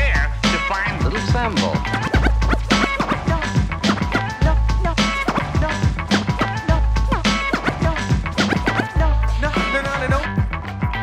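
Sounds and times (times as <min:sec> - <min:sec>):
turntable scratching: 0:00.0 - 0:10.2
hip hop drum beat and bass: 0:00.0 - 0:11.0.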